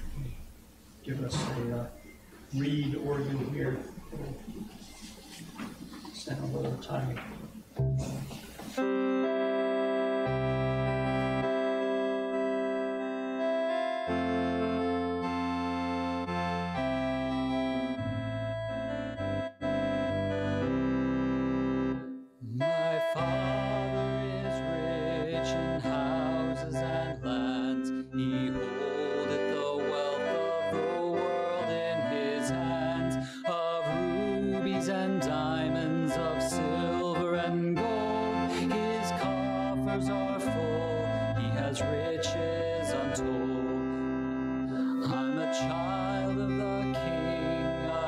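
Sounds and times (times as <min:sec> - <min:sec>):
organ playing held chords: 0:00.0 - 0:04.8, 0:06.2 - 0:48.0
congregation singing: 0:22.6 - 0:48.0.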